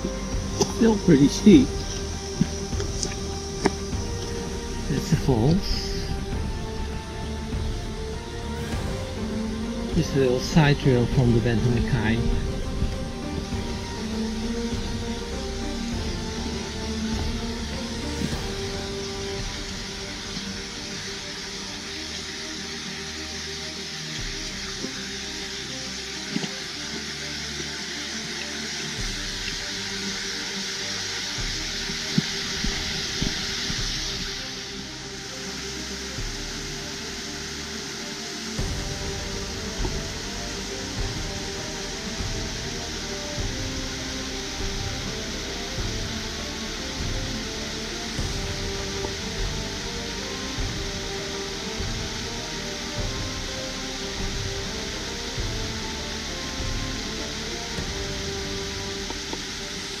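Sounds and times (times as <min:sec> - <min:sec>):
low beat: 0:00.0 - 0:21.5, 0:38.6 - 1:00.0
background music: 0:00.0 - 1:00.0
small waterfall rushing: 0:00.0 - 1:00.0.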